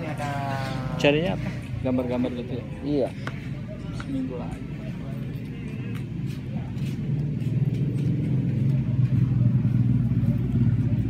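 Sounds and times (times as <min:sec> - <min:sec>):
faint background voices: 0:00.0 - 0:11.0
low engine-like rumble: 0:00.0 - 0:11.0.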